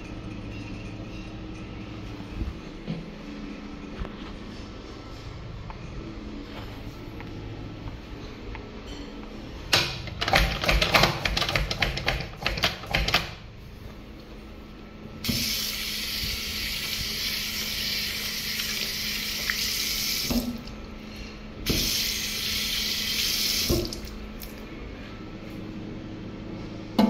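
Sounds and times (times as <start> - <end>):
faucet running into sink: 15.2 - 20.7.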